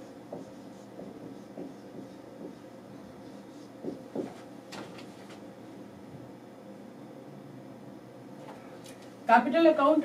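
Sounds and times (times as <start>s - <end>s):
marker pen writing on whiteboard: 0.0s - 4.5s.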